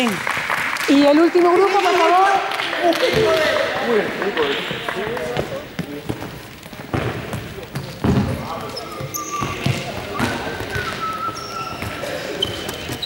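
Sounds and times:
echoing background voices: 0:00.9 - 0:13.0
ball bouncing on hall floor: 0:03.0 - 0:13.0
footsteps: 0:03.0 - 0:13.0
high squeaks: 0:07.8 - 0:13.0.

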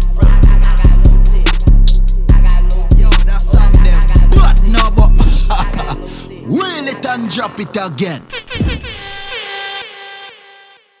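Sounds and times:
horn-like synth chord: 0:08.3 - 0:11.0.

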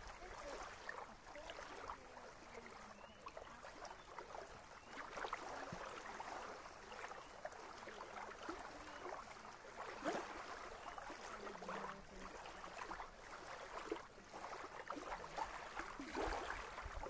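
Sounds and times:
waves lapping on sandy shore: 0:00.0 - 0:17.0.

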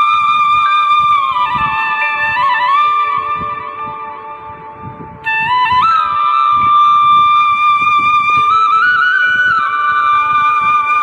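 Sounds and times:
flute music: 0:00.0 - 0:11.0.

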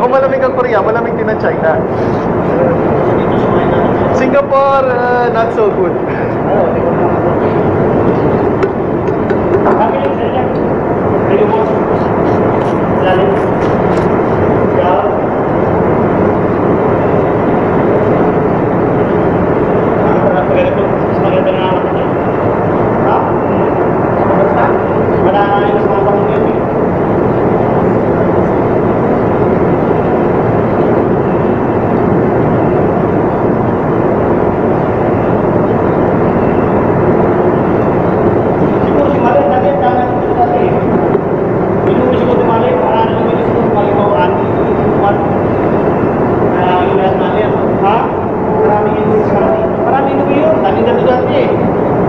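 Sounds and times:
ship machinery drone: 0:00.0 - 0:52.0.

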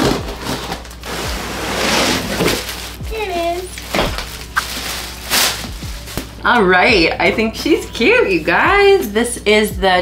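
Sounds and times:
cardboard and plastic rustling: 0:00.0 - 0:06.4.

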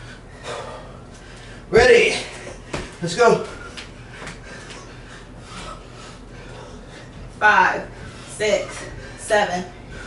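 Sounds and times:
people breathing: 0:00.0 - 0:01.7, 0:02.5 - 0:10.0.

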